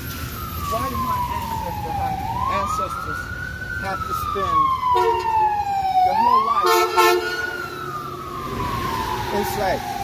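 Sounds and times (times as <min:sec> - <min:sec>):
emergency vehicle siren wailing: 0:00.0 - 0:10.0.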